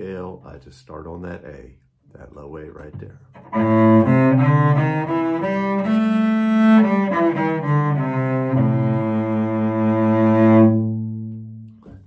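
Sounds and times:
bowed cello notes: 3.4s - 12.0s.

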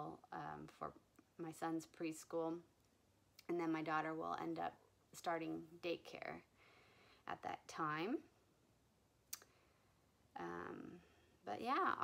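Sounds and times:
person speaking: 10.4s - 12.0s.

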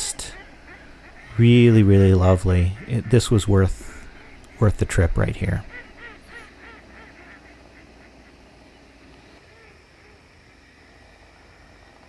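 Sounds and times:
waterfowl calling faintly: 0.0s - 12.0s.

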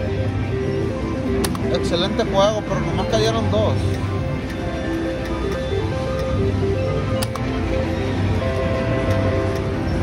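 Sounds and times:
slot machine music: 0.0s - 10.0s
sharp click: 1.4s - 1.7s.

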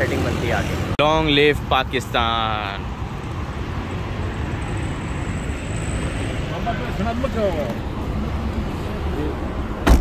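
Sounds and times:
rumble of passing cars: 0.0s - 10.0s.

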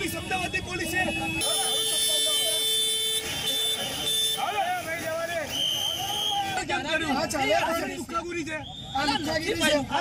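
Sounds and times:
vehicle horn blast: 1.0s - 4.6s
people shouting: 1.0s - 10.0s.

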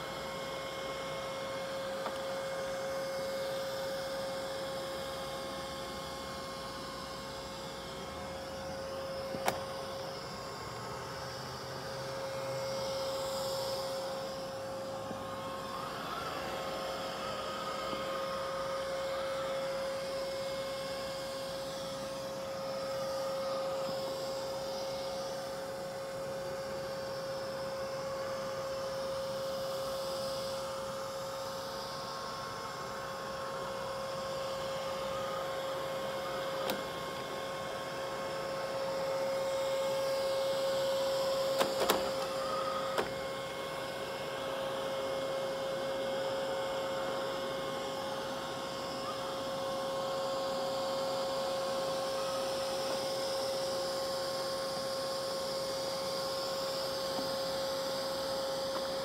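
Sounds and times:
robot vacuum motor whine: 0.0s - 59.0s.

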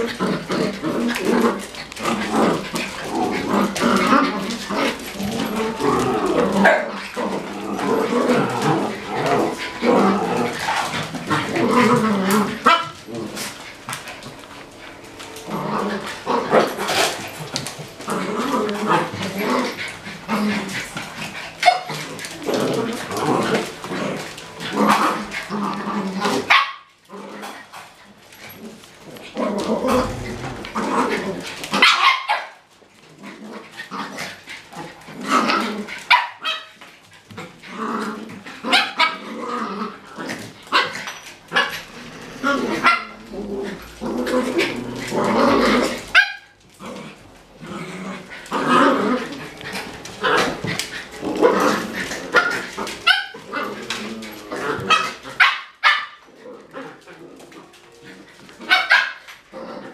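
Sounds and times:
dogs barking and yipping: 0.0s - 47.6s, 48.2s - 59.9s.

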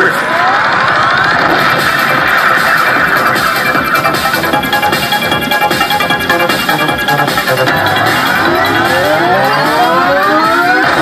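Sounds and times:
slot machine win music: 1.8s - 11.0s
rising tones: 4.4s - 11.0s.

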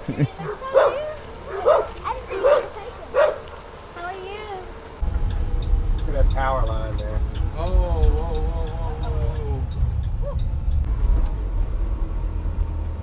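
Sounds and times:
bus engine rumble: 0.0s - 13.0s
dog barking: 0.4s - 3.5s.

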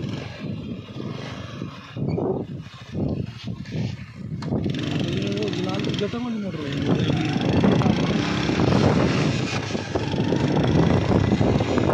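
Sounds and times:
wind buffeting microphone: 0.0s - 11.9s
vehicle engine running: 4.5s - 11.9s.

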